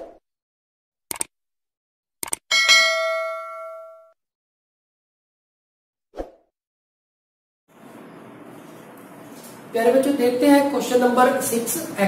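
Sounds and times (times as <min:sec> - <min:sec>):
short clicks: 0:01.1 - 0:01.3, 0:02.2 - 0:02.4
notification bell ding: 0:02.5 - 0:04.2.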